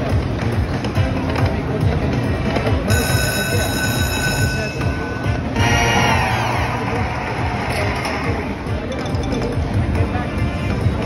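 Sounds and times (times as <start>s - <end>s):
casino background noise: 0.0s - 11.0s
slot machine game music: 2.8s - 10.9s
bright ringing chime: 2.9s - 5.5s.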